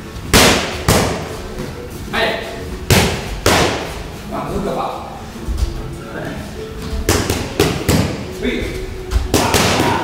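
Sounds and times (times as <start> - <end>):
boxing gloves smacking mitts: 2.9 - 4.0.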